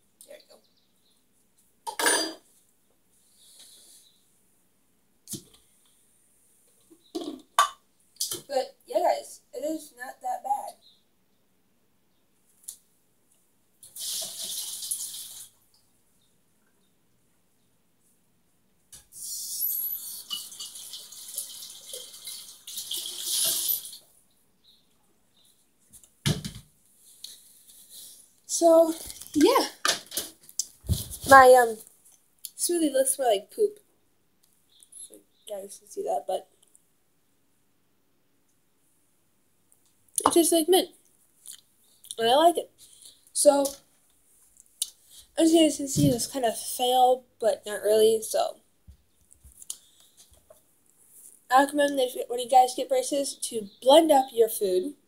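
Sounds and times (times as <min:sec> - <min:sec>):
tap water running into sink: 0:13.9 - 0:15.4, 0:20.3 - 0:24.0.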